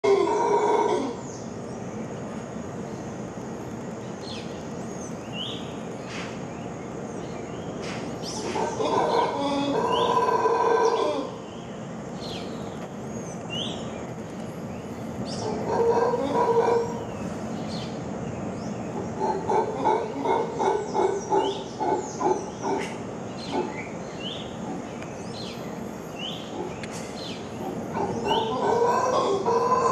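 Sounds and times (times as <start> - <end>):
howler monkey roaring: 0.0 - 1.3, 8.3 - 11.4, 15.3 - 17.2, 18.9 - 25.5, 26.2 - 29.9
small birds chirping: 1.2 - 29.9.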